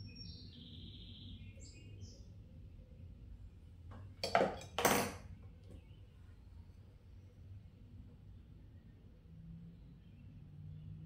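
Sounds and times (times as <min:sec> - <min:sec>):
pottery tools clattering: 0:03.9 - 0:05.4.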